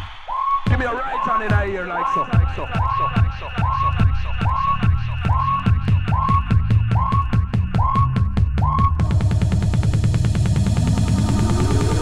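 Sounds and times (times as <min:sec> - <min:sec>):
breakbeat electronic dance music: 0:00.0 - 0:12.0
siren-like synth sweep: 0:03.6 - 0:12.0.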